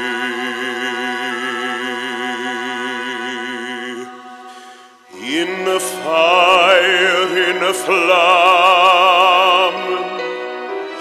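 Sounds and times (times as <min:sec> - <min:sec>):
operatic singing with vibrato: 0:00.0 - 0:11.0.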